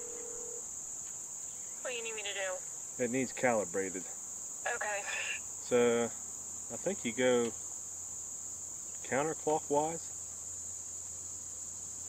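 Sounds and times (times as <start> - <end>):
insects chorus: 0.0 - 12.0.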